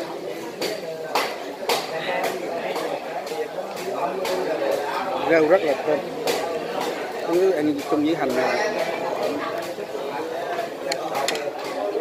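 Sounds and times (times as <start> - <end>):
diners talking: 0.0 - 12.0.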